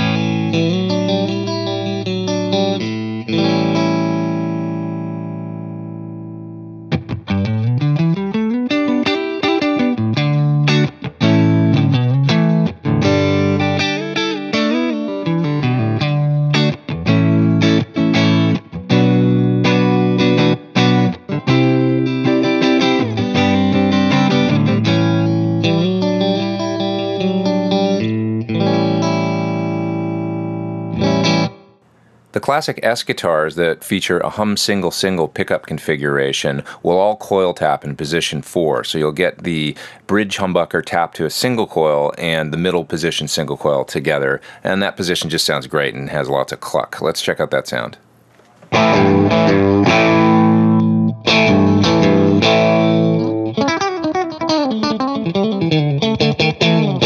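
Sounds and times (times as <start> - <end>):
electric guitar chords: 0.0 - 31.8, 48.7 - 57.0.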